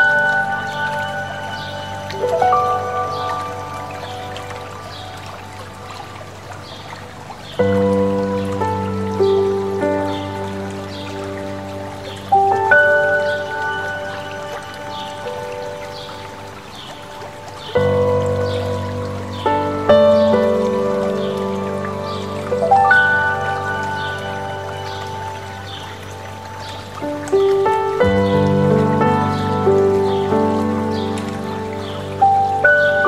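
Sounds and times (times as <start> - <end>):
mountain stream rushing: 0.0 - 33.0
slow solo piano: 0.0 - 33.0.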